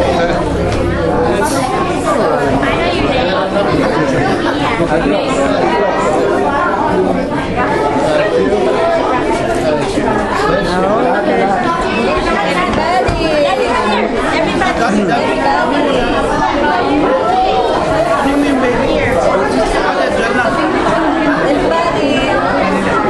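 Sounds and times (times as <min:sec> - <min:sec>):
hubbub of overlapping voices: 0:00.0 - 0:23.0.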